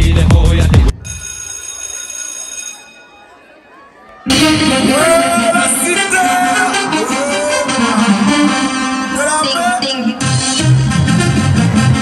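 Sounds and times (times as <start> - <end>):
loud dance music: 0.0 - 1.0, 4.3 - 12.0.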